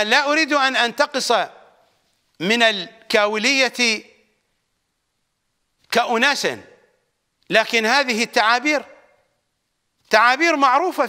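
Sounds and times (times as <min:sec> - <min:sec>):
man speaking: 0:00.0 - 0:01.7, 0:02.4 - 0:04.2, 0:05.8 - 0:06.8, 0:07.5 - 0:09.2, 0:10.0 - 0:11.0.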